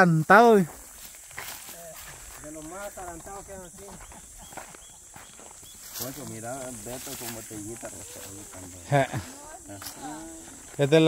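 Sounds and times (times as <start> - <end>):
footsteps crunching on dirt trail: 0.2 - 11.0.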